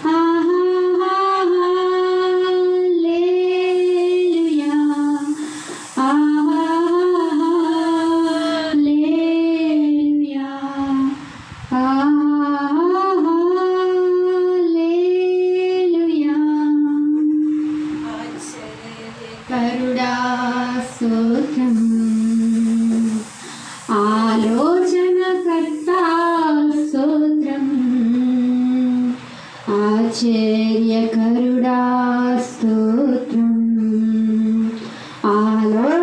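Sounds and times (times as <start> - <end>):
woman singing worship song: 0.0 - 36.0.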